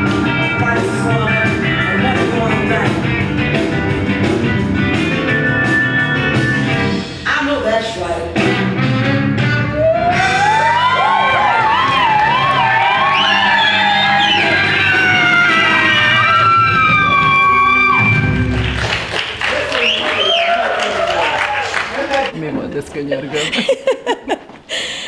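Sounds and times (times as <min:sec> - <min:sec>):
electric guitar lead with bends: 0:00.0 - 0:07.3, 0:08.4 - 0:18.8
people shouting: 0:09.8 - 0:18.2
people laughing: 0:23.1 - 0:25.0.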